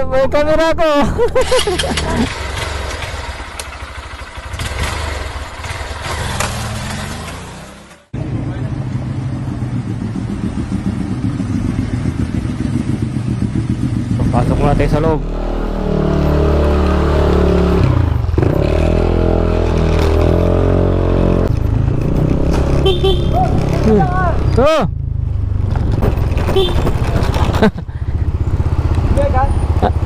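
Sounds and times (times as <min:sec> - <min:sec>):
street traffic: 0:00.0 - 0:30.0
motor scooter passing: 0:09.8 - 0:30.0.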